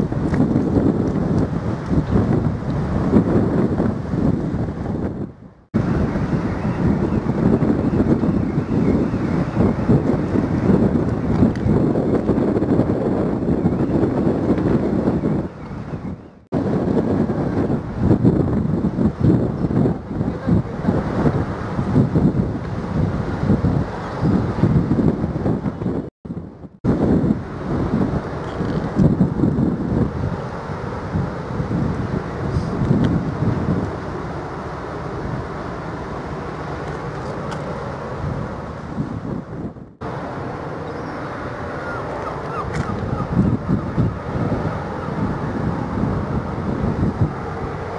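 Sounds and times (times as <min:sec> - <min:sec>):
wind buffeting microphone: 0:00.0 - 0:47.9.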